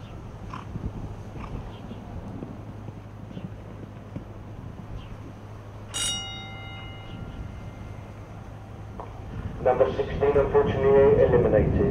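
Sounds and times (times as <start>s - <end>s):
bell ringing: 5.9s - 9.0s.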